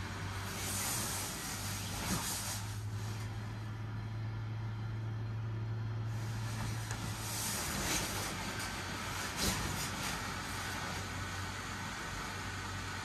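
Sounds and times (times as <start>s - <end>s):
blower fan humming: 0.0s - 13.0s
inflated fabric rustling: 0.4s - 3.3s, 6.1s - 11.4s.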